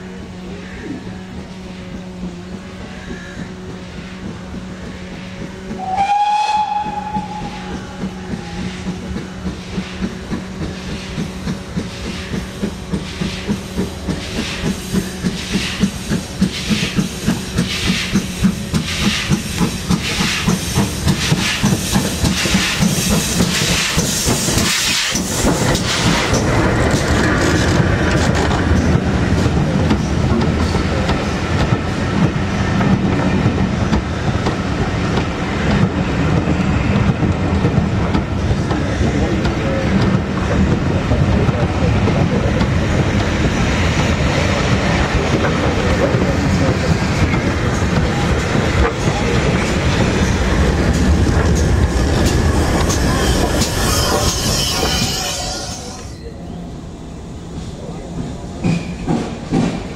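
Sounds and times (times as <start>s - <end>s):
train coaches clickety-clack: 0.0s - 59.9s
steam locomotive chuffing: 1.3s - 56.2s, 57.2s - 59.9s
steam locomotive whistle: 5.7s - 8.9s, 53.0s - 56.1s.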